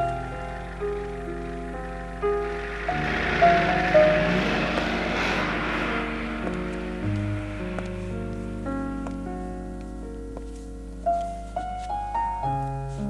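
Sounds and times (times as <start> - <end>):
swell of noise: 0.0 - 10.2
held keyboard chords music: 6.4 - 13.0.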